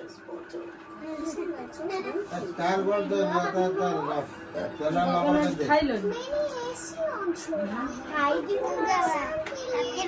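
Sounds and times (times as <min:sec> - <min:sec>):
children chattering and calling out: 0:06.0 - 0:10.0.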